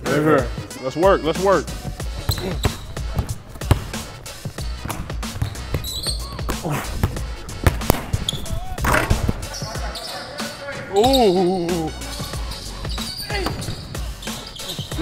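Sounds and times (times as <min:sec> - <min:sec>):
background music: 0:00.0 - 0:15.0
basketballs bouncing on hardwood: 0:01.9 - 0:09.5, 0:13.1 - 0:15.0.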